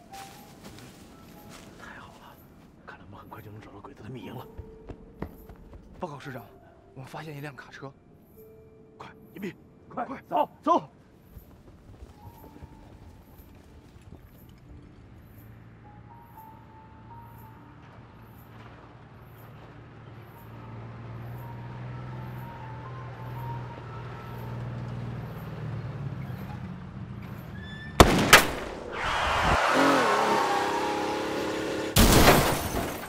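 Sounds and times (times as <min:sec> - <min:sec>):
tense sustained music: 0:11.2 - 0:26.1, 0:29.9 - 0:32.0
truck engine: 0:13.2 - 0:33.0.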